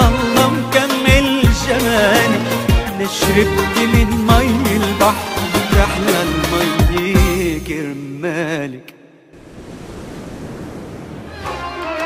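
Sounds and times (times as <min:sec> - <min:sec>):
music: 0:00.0 - 0:08.6, 0:11.3 - 0:12.0.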